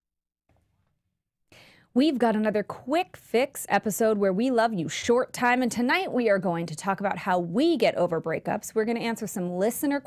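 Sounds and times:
woman breathing in: 0:01.5 - 0:01.9.

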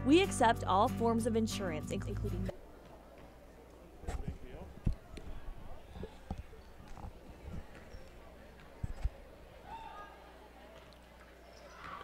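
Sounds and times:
voices in a gym: 0:02.5 - 0:12.0.

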